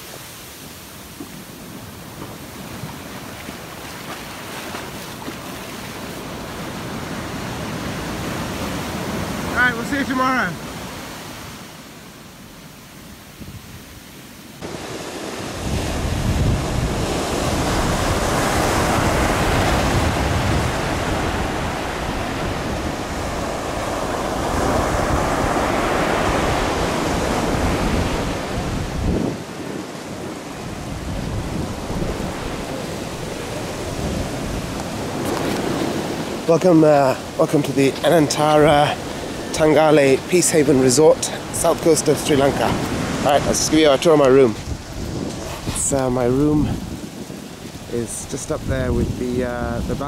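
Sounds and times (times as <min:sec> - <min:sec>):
waves breaking on beach: 0:00.0 - 0:50.0
wind rumbling on microphone: 0:13.0 - 0:36.5, 0:37.2 - 0:50.0.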